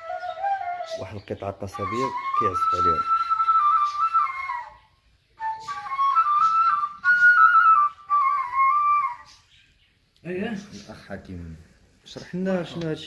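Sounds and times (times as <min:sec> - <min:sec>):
reed flute melody: 0:00.0 - 0:09.6.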